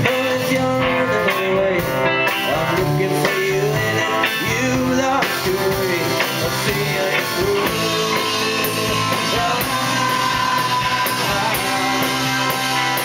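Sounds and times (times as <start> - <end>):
acoustic guitar: 0.0 - 13.0
drum kit: 0.0 - 13.0
electric guitar: 0.0 - 13.0.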